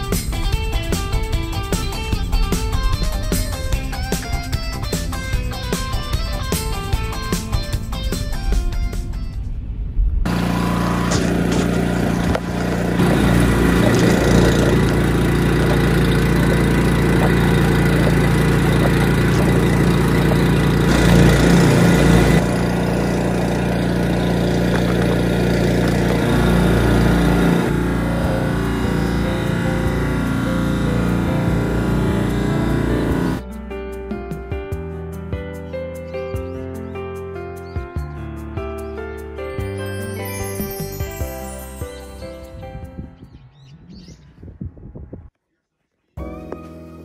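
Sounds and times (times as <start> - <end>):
snowblower engine running: 10.3 - 33.4.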